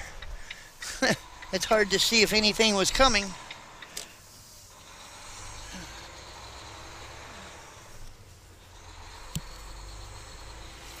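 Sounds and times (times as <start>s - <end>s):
truck engine and road rumble: 0.0s - 11.0s.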